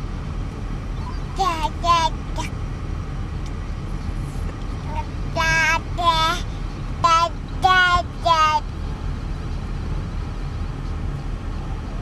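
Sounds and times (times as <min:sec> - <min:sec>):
car cabin rumble: 0:00.0 - 0:12.0
baby babbling: 0:01.0 - 0:02.5, 0:04.9 - 0:08.6.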